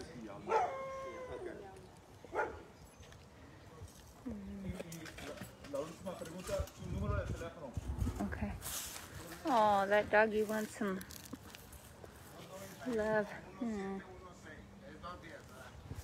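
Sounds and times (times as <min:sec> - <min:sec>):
quiet voices: 0:00.0 - 0:07.0
large dog barking: 0:00.4 - 0:01.3, 0:02.3 - 0:02.7.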